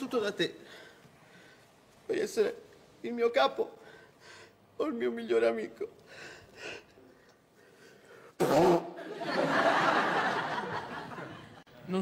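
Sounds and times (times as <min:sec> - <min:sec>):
man blowing nose: 0:08.4 - 0:09.0.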